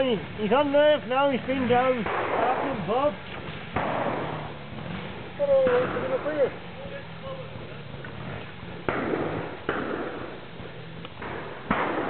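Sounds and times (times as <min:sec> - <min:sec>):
motorcycle engine throttle bursts: 0:00.0 - 0:12.0.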